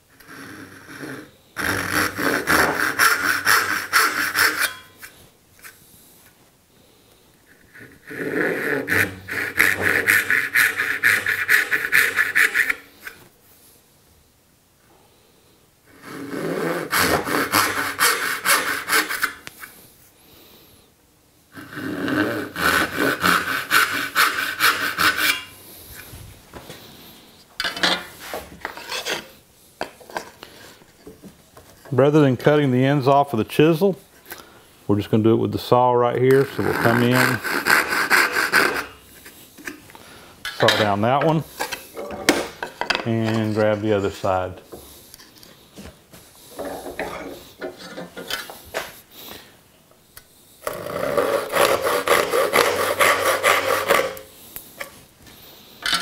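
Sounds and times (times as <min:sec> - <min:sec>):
hand saw cutting wood: 0:00.1 - 0:05.1, 0:07.6 - 0:13.2, 0:15.9 - 0:19.4, 0:21.6 - 0:25.6, 0:36.3 - 0:39.0, 0:50.6 - 0:54.3.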